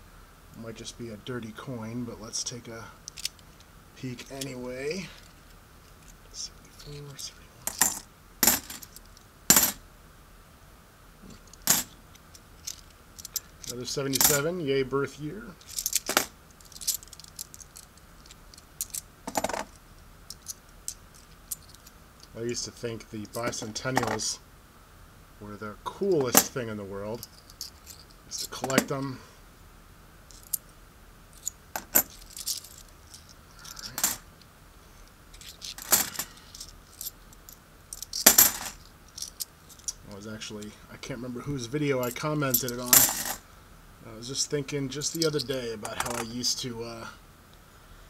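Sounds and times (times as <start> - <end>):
coins clattering: 7.7 - 9.8, 11.4 - 12.0, 12.6 - 14.4, 15.6 - 21.9, 30.3 - 30.6, 31.4 - 34.2, 35.3 - 40.0, 42.0 - 43.4
coins clicking together: 12.6 - 14.4, 15.6 - 21.9, 31.4 - 34.2, 35.4 - 40.0.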